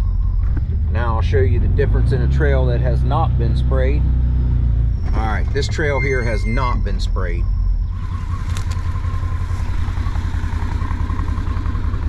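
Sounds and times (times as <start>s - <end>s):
engine idling low rumble: 0.0s - 12.0s.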